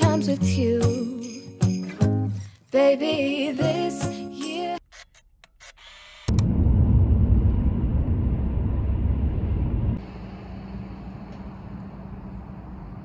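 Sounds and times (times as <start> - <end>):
loud low rumble: 6.3 - 11.1
steady outdoor hum: 6.3 - 13.0.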